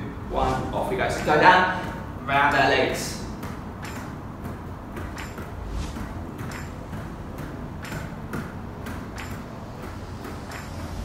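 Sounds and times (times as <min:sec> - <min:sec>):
ball tapping hands: 0:01.2 - 0:11.0.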